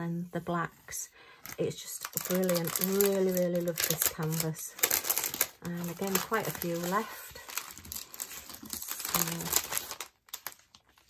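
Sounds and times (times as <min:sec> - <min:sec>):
plastic bags crinkling: 0:01.4 - 0:11.0.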